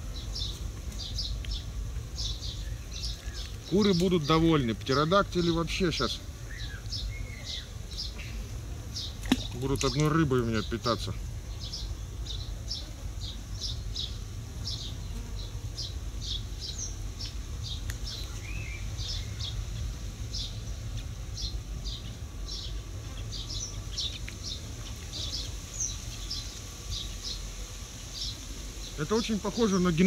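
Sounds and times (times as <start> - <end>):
songbird chirping: 0.0 - 30.0.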